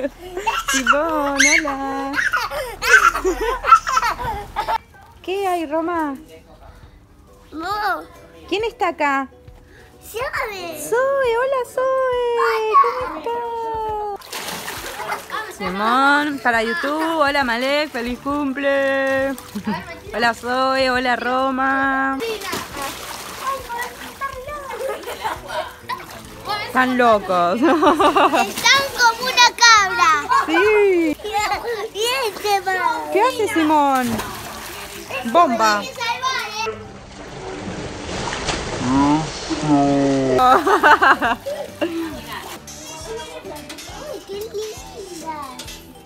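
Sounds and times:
toddler laughing: 0:00.0 - 0:04.8
water splashing in a pool: 0:00.0 - 0:05.2, 0:12.5 - 0:44.2
children's voices: 0:22.2 - 0:26.8, 0:28.2 - 0:30.6, 0:31.2 - 0:36.7, 0:40.6 - 0:46.0.

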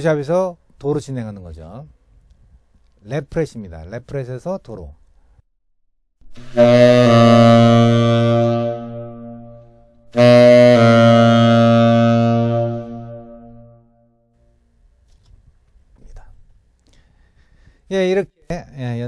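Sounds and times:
tenor saxophone notes: 0:06.3 - 0:14.0.

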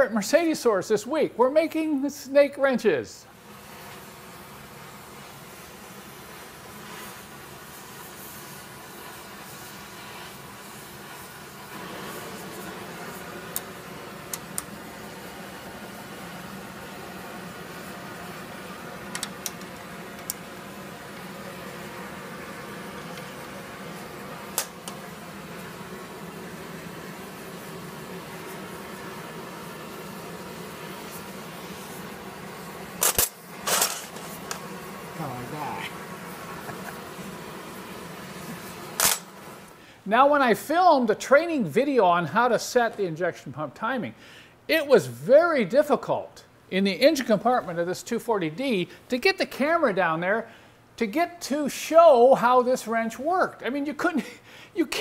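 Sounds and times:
workshop drone and hiss: 0:00.0 - 0:55.0.

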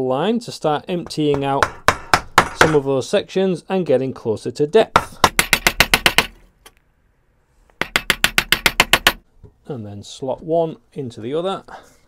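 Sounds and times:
mallet tapping chisel into wood: 0:01.0 - 0:02.8, 0:05.0 - 0:06.4, 0:07.8 - 0:09.2.

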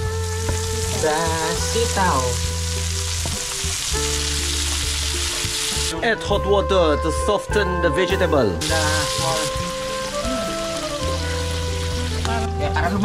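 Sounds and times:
food sizzling in a wok: 0:00.0 - 0:06.3, 0:08.1 - 0:13.0.

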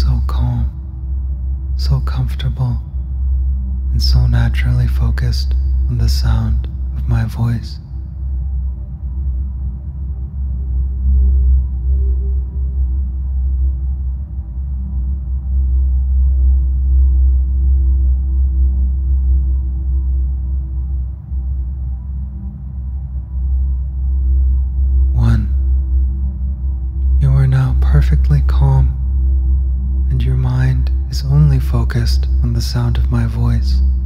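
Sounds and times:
deep ambient drone: 0:00.0 - 0:34.0
sustained tone: 0:00.0 - 0:34.0.

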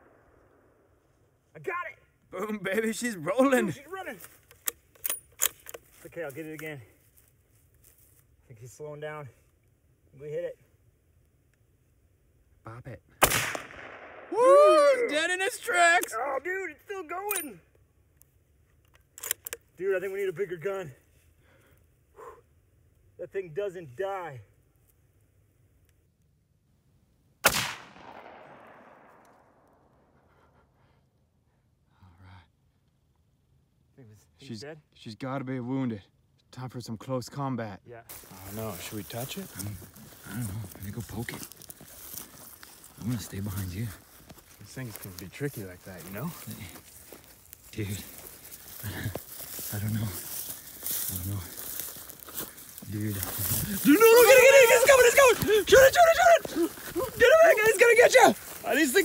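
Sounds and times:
rifle action metallic clicks: 0:04.5 - 0:05.8, 0:18.8 - 0:19.6
gunshot with echo: 0:13.2 - 0:14.3, 0:27.4 - 0:29.2.

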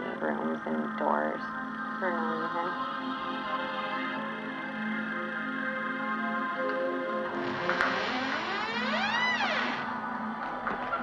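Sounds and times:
ambient music drone: 0:00.0 - 0:11.0
door creaking open: 0:07.3 - 0:11.0.

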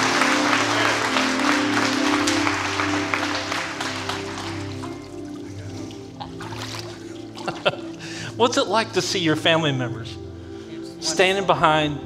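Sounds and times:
congregation applauding: 0:00.0 - 0:07.9
soft music of held chords: 0:00.0 - 0:12.0.

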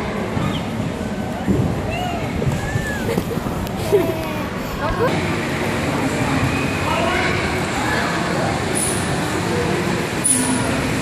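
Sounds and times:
indoor play hall din: 0:00.0 - 0:11.0.

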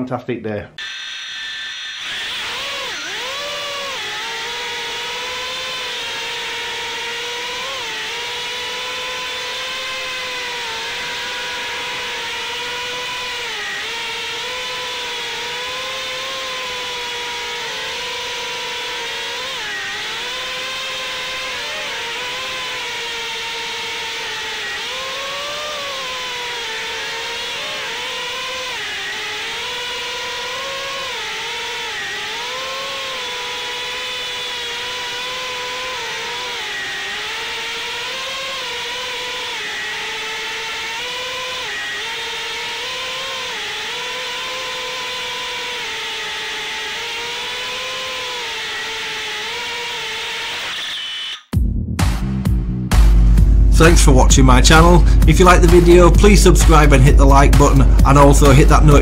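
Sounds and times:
drone propellers whining: 0:00.8 - 0:51.6, 0:53.2 - 0:59.0.

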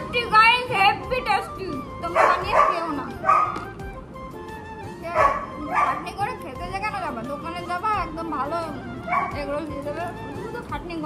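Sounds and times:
background music: 0:00.0 - 0:11.0
dog barking: 0:02.1 - 0:03.6, 0:05.2 - 0:06.1, 0:09.1 - 0:09.4.

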